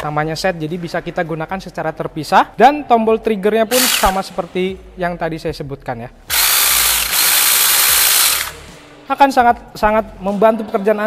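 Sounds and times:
mini chainsaw whirring: 3.7 - 4.3, 6.3 - 8.6.

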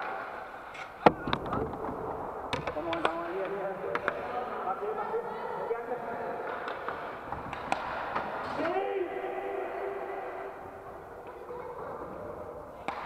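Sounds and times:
sticks hitting puck: 0.0 - 4.7, 6.4 - 8.9, 12.8 - 13.0.

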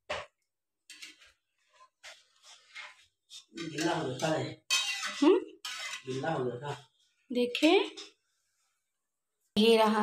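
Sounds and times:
ladle stirring milk in pan: 0.2 - 8.8
faint scraping: 0.9 - 8.9.

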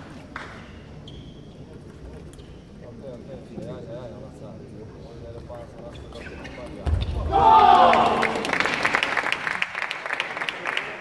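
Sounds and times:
loud celebratory shout: 7.2 - 8.6
scattered clapping: 7.8 - 11.0.

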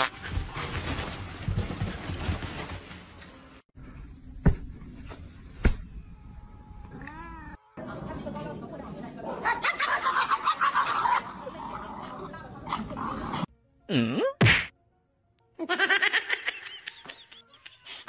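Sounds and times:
music: 13.1 - 18.0
sharp slap: 14.4 - 14.7.

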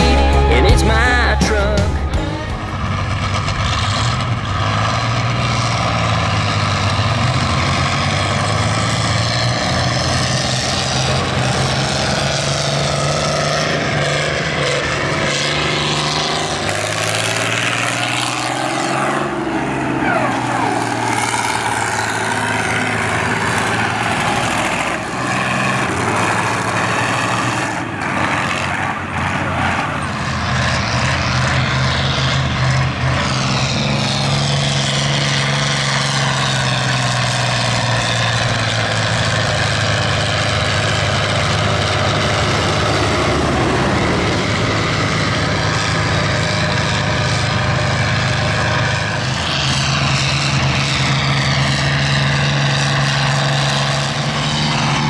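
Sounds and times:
combine harvester engines running: 0.0 - 55.0.

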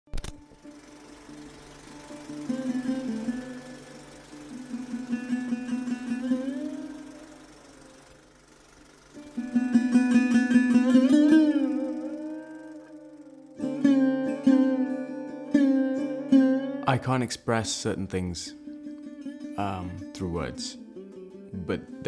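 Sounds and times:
sarod plucked notes: 0.2 - 22.0
steady drone: 0.4 - 16.2.

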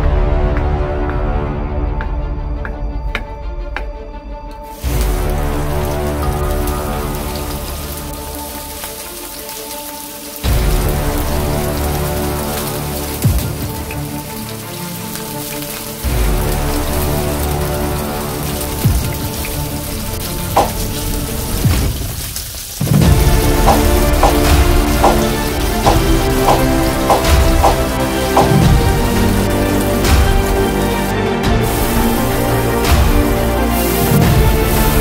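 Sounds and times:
tofu sizzling in hot oil: 4.7 - 35.0.

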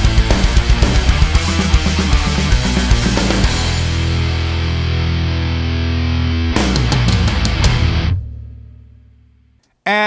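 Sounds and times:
distorted electric guitar: 0.0 - 9.2
drums: 0.0 - 9.2.

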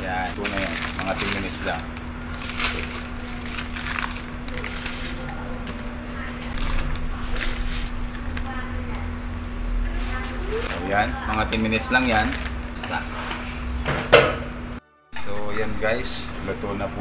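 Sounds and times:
pasta boiling in a pot: 0.0 - 13.8
steady low hum: 0.0 - 17.0.

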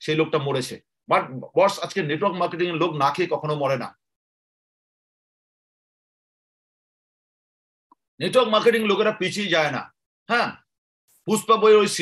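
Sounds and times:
man talking: 11.2 - 12.0.

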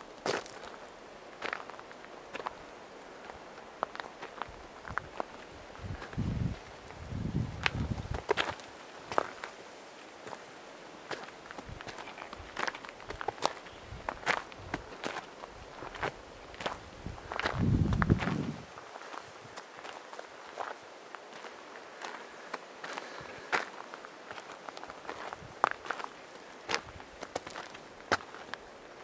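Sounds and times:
footsteps on gravel: 0.2 - 2.6, 3.2 - 9.6, 10.2 - 10.5, 11.1 - 28.8.

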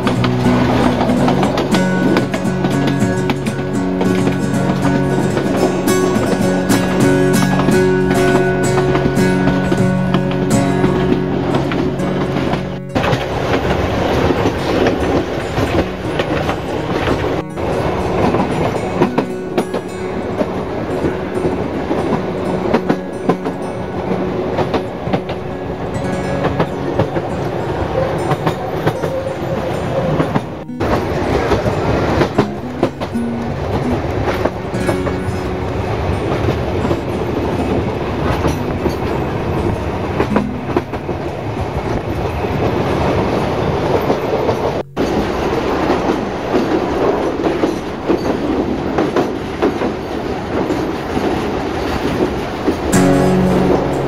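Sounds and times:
train rolling rumble: 0.0 - 54.0
wheels clattering over rail joints: 0.0 - 54.0.

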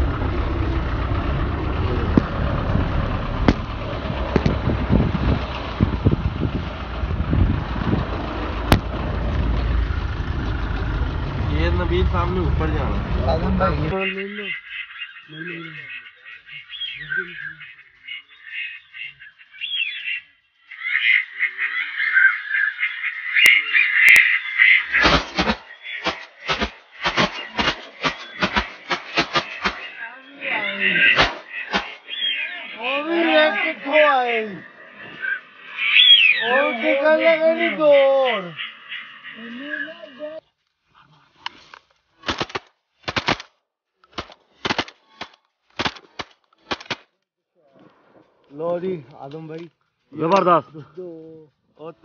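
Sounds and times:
rough low bursts: 0.0 - 14.0, 24.9 - 30.1
shotgun blasts: 3.4 - 3.7, 24.9 - 29.9, 31.1 - 32.0, 42.2 - 43.5, 44.1 - 47.1
flock of ducks chattering: 13.9 - 40.4.

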